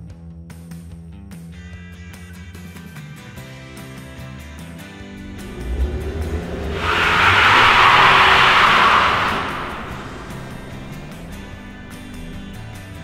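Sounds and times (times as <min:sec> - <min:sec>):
car passing at speed: 0:05.1 - 0:13.0.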